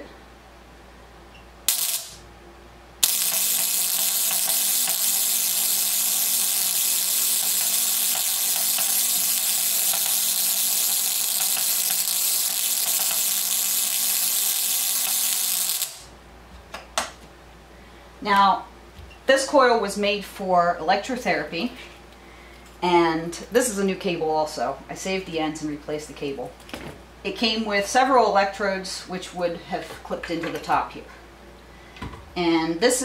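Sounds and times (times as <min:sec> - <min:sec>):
spark gap crackling buzz: 0:01.6 - 0:02.3, 0:03.0 - 0:16.1.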